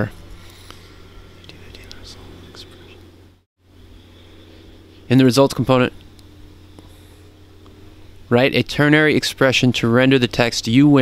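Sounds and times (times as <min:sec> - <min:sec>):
steady low hum: 0:00.0 - 0:11.0
person whispering: 0:01.4 - 0:03.0.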